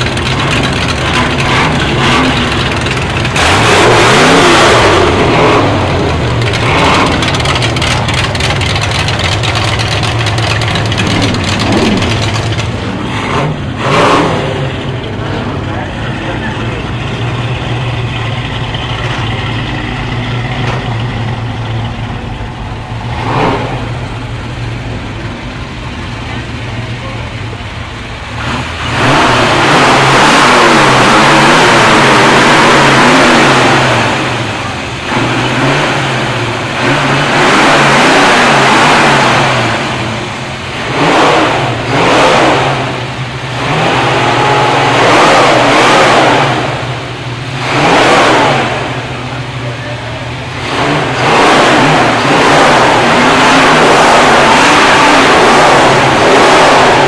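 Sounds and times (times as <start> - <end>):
car engine idling: 0.0 - 57.0
car engine revving: 0.0 - 57.0.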